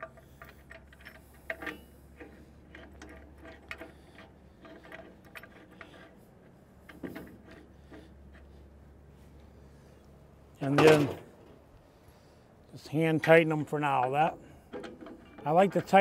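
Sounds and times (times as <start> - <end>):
metallic clicks and scrapes: 0.0 - 9.5.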